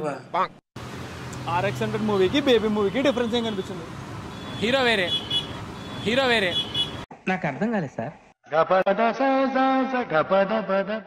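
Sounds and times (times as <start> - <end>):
road traffic noise: 0.0 - 7.1.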